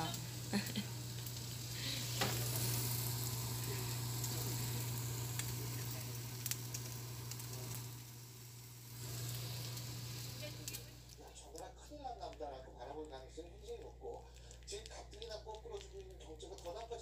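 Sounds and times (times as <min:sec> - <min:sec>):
meat sizzling in frying pan: 0:00.0 - 0:11.2
steady low hum: 0:00.0 - 0:17.0.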